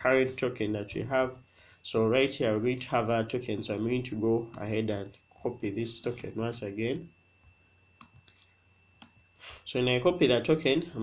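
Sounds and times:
computer mouse click: 8.0s - 9.2s.

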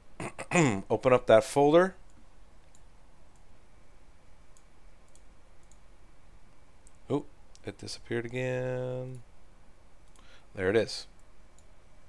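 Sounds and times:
computer mouse clicks: 2.1s - 3.5s, 4.5s - 5.9s, 10.0s - 10.3s, 11.1s - 11.7s.

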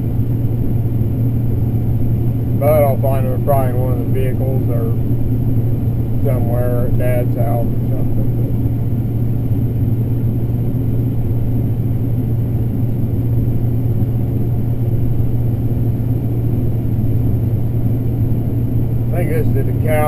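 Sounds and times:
combine harvester low drone: 0.0s - 20.0s
man talking: 2.6s - 5.0s, 6.2s - 8.6s, 19.1s - 20.0s.

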